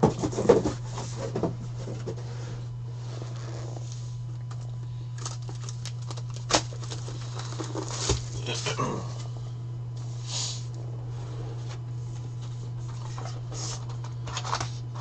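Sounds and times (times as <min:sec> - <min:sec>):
steady low hum: 0:00.0 - 0:15.0
shrink wrap crinkling: 0:05.2 - 0:08.8.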